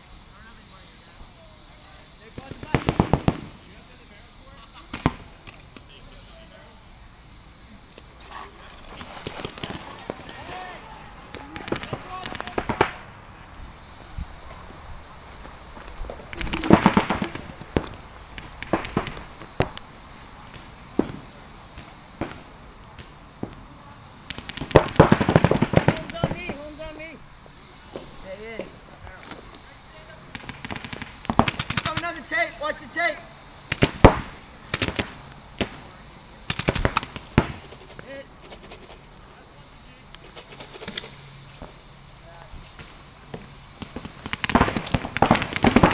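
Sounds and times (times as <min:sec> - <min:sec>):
paintball markers firing: 0:02.4 - 0:03.7, 0:08.8 - 0:13.3, 0:15.8 - 0:19.9, 0:24.2 - 0:26.7, 0:30.3 - 0:32.1, 0:33.7 - 0:39.0, 0:42.6 - 0:45.9
people shouting: 0:08.2 - 0:13.1, 0:16.3 - 0:17.6.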